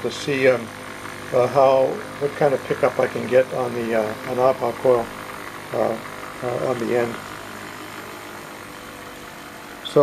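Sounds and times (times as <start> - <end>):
pulse motor running: 0.0 - 10.0.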